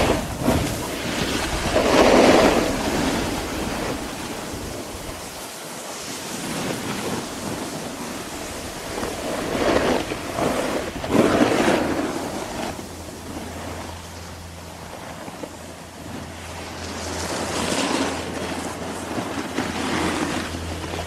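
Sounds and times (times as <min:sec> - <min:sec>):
skis carving on snow: 0:00.0 - 0:21.0
wind on microphone: 0:00.0 - 0:21.0.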